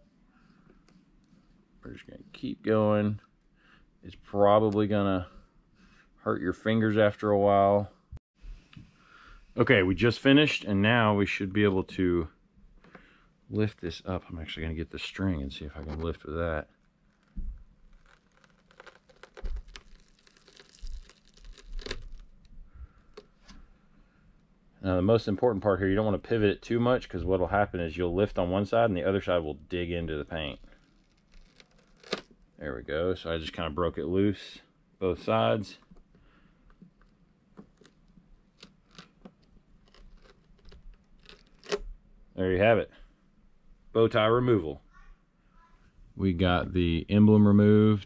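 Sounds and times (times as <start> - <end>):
adhesive crackling and tearing: 16.8 - 23.4, 30.5 - 32.6, 37.0 - 41.9.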